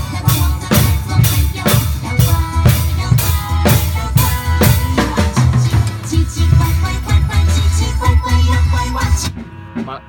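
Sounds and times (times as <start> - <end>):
drum kit playing: 0.0 - 10.0
song playing: 0.0 - 10.0.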